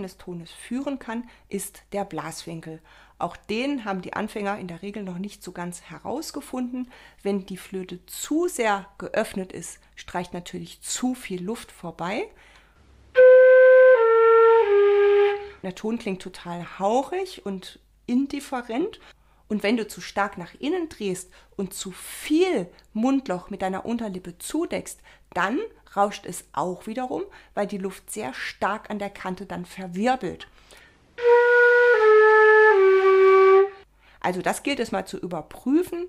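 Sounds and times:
breathy flute notes: 0:13.1 - 0:15.6, 0:31.2 - 0:33.8.

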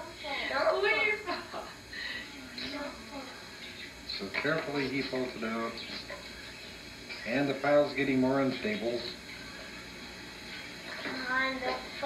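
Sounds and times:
faint hum: 0:00.0 - 0:12.0
steady low hiss: 0:00.0 - 0:12.0.

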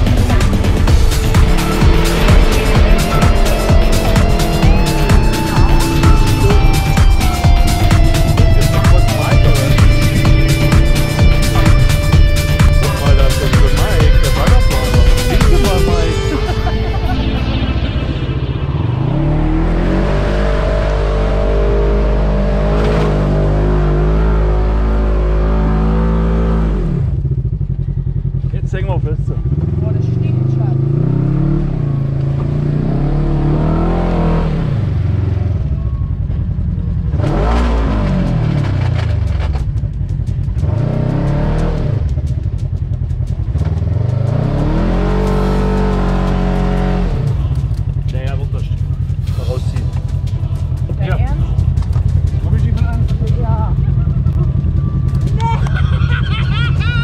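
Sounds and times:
engine revving: 0:00.0 - 0:57.0.

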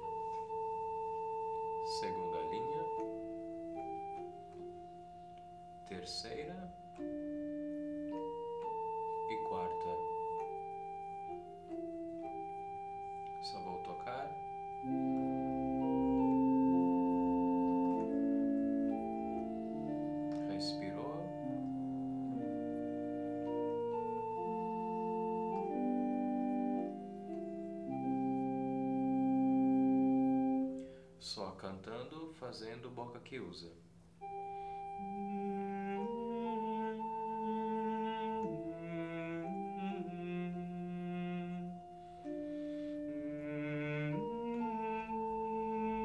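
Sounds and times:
organ chords: 0:00.0 - 0:46.0.

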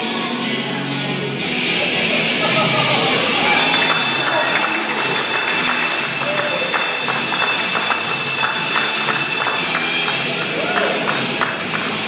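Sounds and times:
background music: 0:00.0 - 0:12.0
crowd voices: 0:01.2 - 0:12.0
audience clapping: 0:03.2 - 0:12.0.

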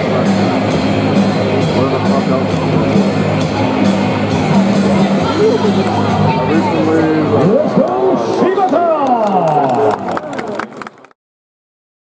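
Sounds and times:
voices echoing in a stadium: 0:00.0 - 0:11.1.

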